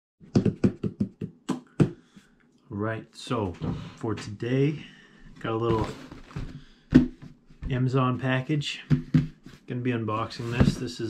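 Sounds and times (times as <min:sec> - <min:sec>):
hands drumming on cardboard box: 0:00.2 - 0:02.0.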